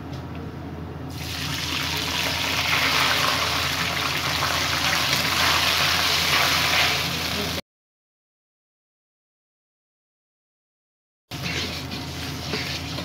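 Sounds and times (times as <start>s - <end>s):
water sizzling in hot oil: 1.1s - 7.6s.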